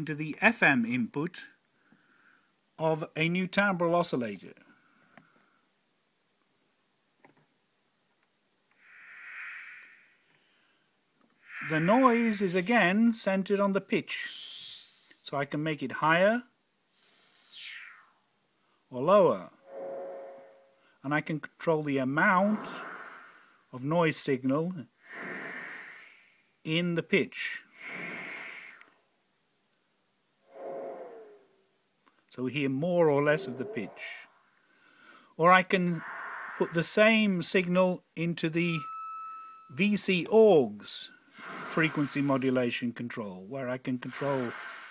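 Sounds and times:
synthesizer noise bursts: 0:11.4 - 0:13.0, 0:14.0 - 0:15.8, 0:16.8 - 0:18.3, 0:35.7 - 0:37.8
synthesizer high-pitched hiss: 0:11.4 - 0:13.1, 0:14.0 - 0:15.8, 0:16.8 - 0:18.3, 0:22.0 - 0:23.7, 0:35.6 - 0:40.3, 0:41.3 - 0:42.8, 0:43.9 - 0:44.9.

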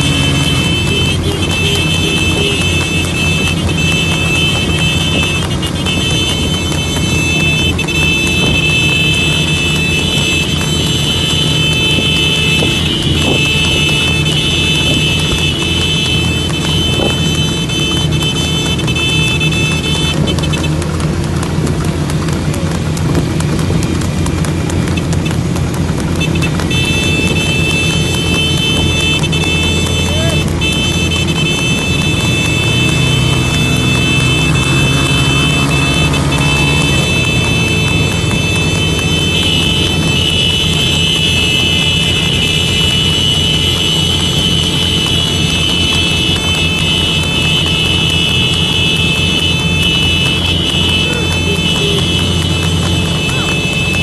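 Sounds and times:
hooves clip-clopping on asphalt: 0:00.0 - 0:54.0
motorcycle engine running: 0:00.0 - 0:54.0
road noise: 0:00.0 - 0:54.0.

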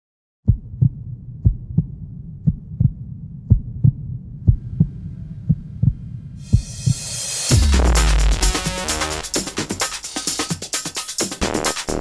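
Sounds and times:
low hum: 0:00.5 - 0:09.7
heartbeat thumps: 0:00.5 - 0:09.8.

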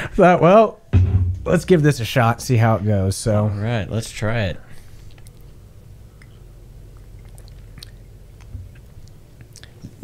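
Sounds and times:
soft thump: 0:00.9 - 0:01.5
sipping and swallowing: 0:05.0 - 0:10.0.

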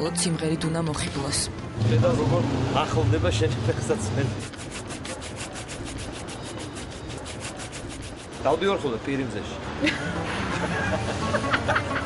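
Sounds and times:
brush rubbing back and forth: 0:04.3 - 0:08.9.

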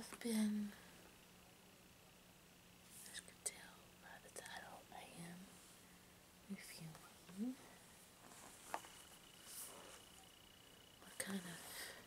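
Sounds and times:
woman whispering: 0:03.0 - 0:05.5, 0:06.5 - 0:07.8, 0:11.0 - 0:12.0.

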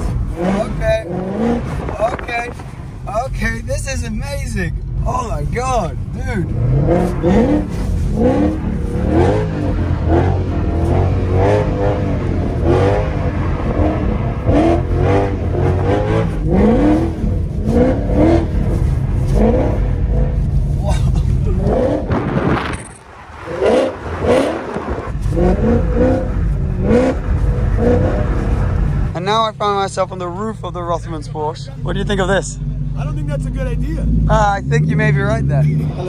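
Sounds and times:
car engine revving: 0:00.0 - 0:36.0.

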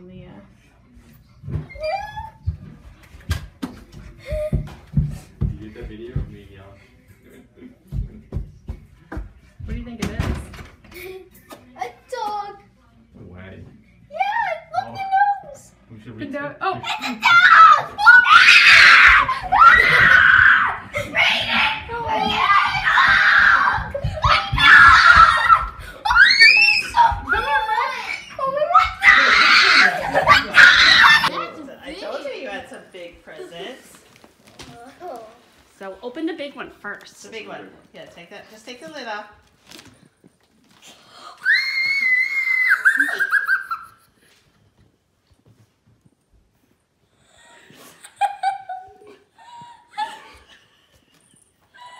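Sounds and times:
children screaming: 0:17.0 - 0:31.4, 0:41.4 - 0:43.8
girl screaming with delight: 0:41.4 - 0:43.8.

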